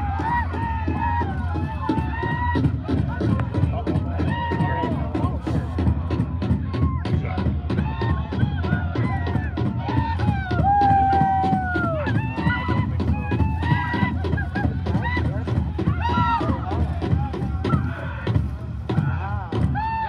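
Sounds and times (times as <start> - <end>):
high voices yelling and whooping: 0.0 - 5.8, 6.7 - 20.0.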